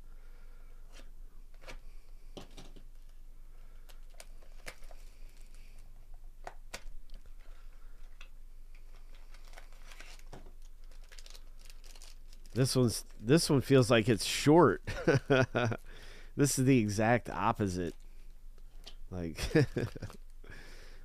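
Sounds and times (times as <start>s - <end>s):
faint low hum: 0.0s - 21.0s
card packaging clicks and crinkles: 3.8s - 13.2s.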